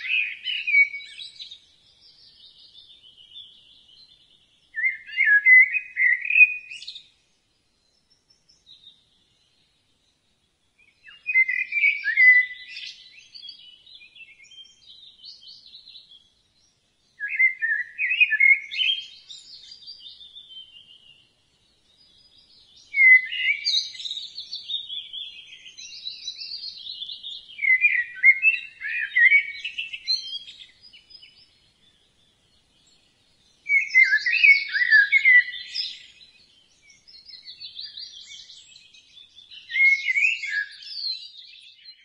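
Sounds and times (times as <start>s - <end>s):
songbird chirping and warbling: 0.0s - 42.0s.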